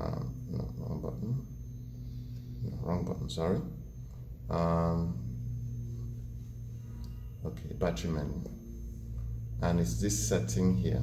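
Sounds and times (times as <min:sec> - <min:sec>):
faint higher tones: 0:00.0 - 0:11.0
steady low hum: 0:00.0 - 0:11.0.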